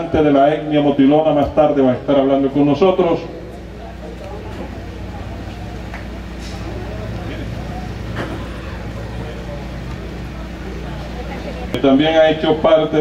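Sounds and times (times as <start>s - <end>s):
steady low hum: 0.0s - 13.0s
indistinct voices murmuring: 2.4s - 13.0s.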